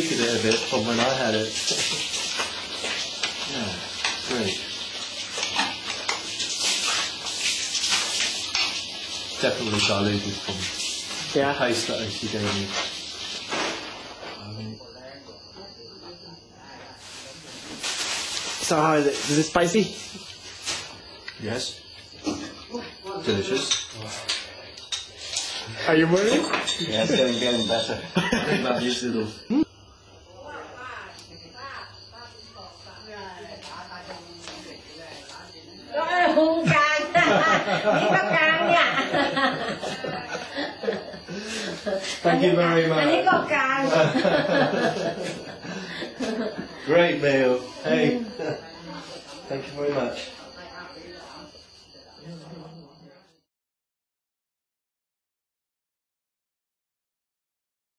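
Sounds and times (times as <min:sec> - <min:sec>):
high-pitched hiss: 0:00.0 - 0:53.0
high-pitched insect trill: 0:00.0 - 0:53.4.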